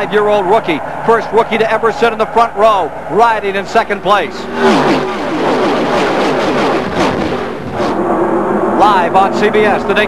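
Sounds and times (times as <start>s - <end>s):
race cars passing at speed: 0.0s - 10.0s.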